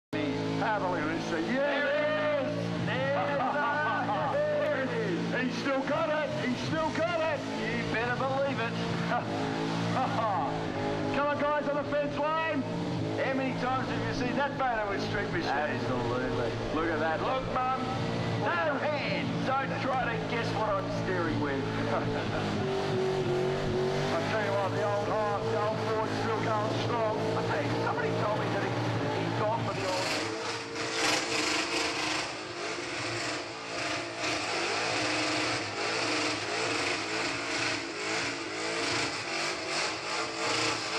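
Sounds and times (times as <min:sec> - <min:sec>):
car engine at high revs: 0:00.2 - 0:40.9
tyres spinning and squealing: 0:00.4 - 0:40.9.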